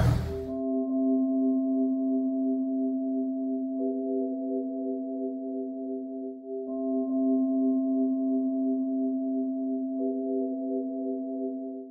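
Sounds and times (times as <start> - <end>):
ambient music chord: 0.0 - 11.9.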